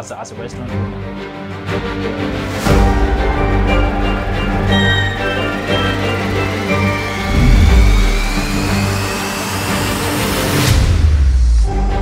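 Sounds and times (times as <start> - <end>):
title theme music: 2.7 - 10.2
rising whoosh: 7.0 - 9.9
heavy low boom: 7.2 - 8.8.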